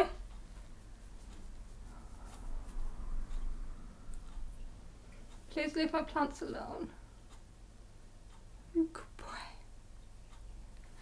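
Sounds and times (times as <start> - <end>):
woman speaking quietly: 5.5 - 7.0, 8.7 - 9.6.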